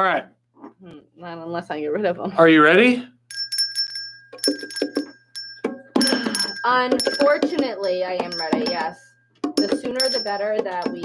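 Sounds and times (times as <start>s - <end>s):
brass handbell ringing: 3.3s - 11.0s
hand hits on bongos: 4.4s - 11.0s.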